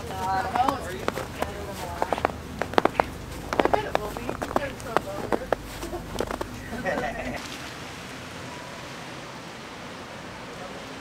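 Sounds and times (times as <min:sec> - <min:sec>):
boot crunching in snow: 0:00.0 - 0:07.4
steady outdoor hiss: 0:00.0 - 0:11.0.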